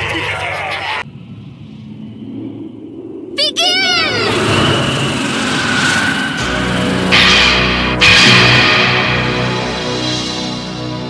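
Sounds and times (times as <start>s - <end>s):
dense rushing noise: 4.1s - 11.0s
sharp wavering pitched sound effect: 4.2s - 10.6s
low music: 6.4s - 11.0s.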